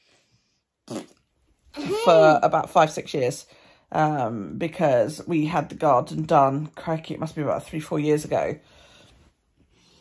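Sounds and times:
spluttering raspberry: 0.8s - 2.3s
person speaking: 1.8s - 3.3s.

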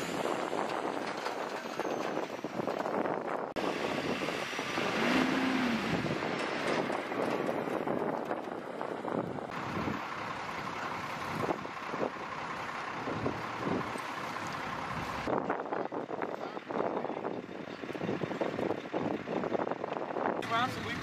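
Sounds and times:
wind on microphone: 0.0s - 10.0s
heavy truck driving over rough ground: 0.0s - 21.0s.

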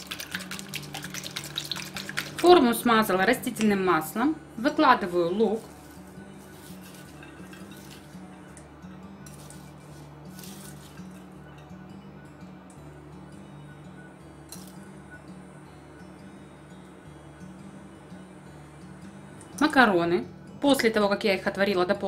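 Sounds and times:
quiet background music: 0.0s - 22.0s.

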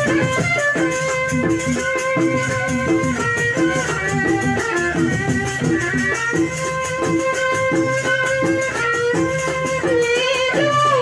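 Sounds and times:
hand drums: 0.0s - 11.0s
quick even rattling beat: 0.0s - 11.0s.

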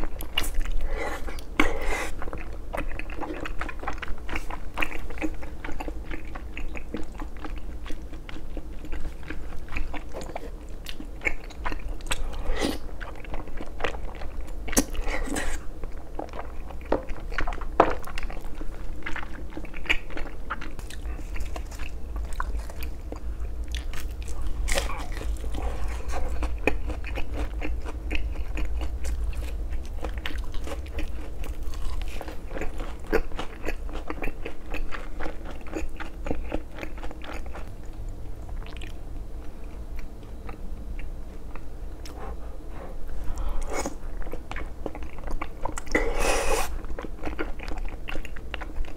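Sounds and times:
crunching of fried batter: 13.0s - 39.0s.

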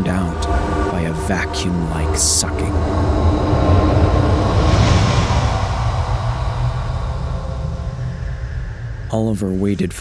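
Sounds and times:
deep rumbling sucking: 0.0s - 9.9s.

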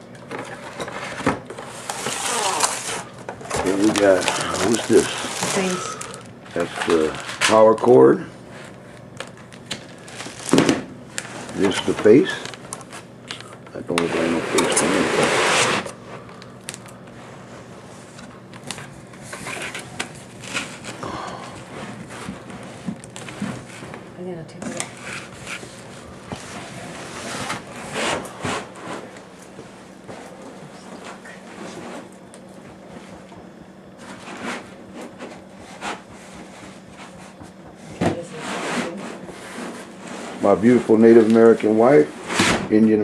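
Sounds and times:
cardboard and foam rustling: 1.2s - 8.0s, 9.7s - 13.1s, 24.6s - 32.1s.

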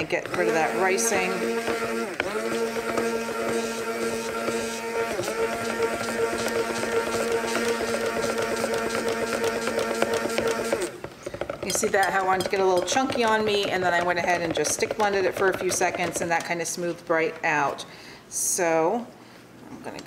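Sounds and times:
stick blender humming: 0.0s - 16.6s.

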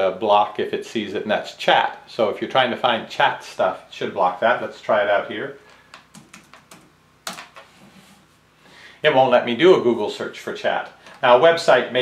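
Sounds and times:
laptop keyboard typing: 5.9s - 7.6s.

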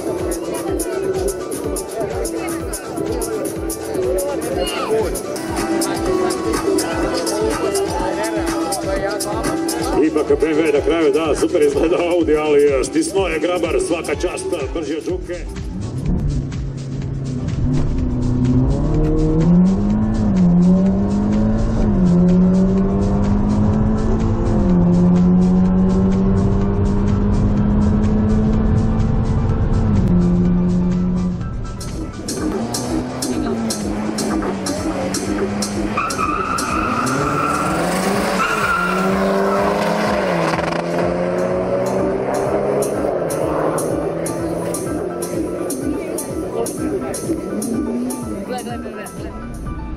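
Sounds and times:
background music with a beat: 0.0s - 49.9s
car engine accelerating: 15.4s - 49.9s.

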